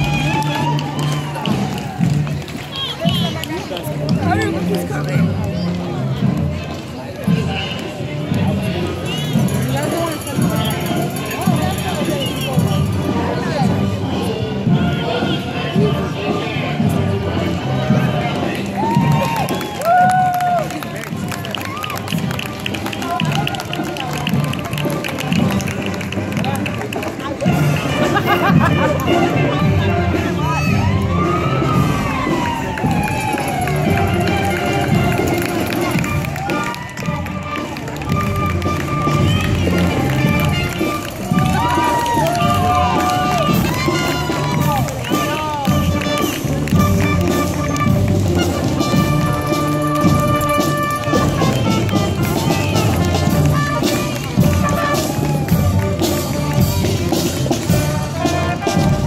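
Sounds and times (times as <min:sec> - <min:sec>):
crowd chatter: 0:00.0 - 0:59.0
marching band music: 0:00.0 - 0:59.0.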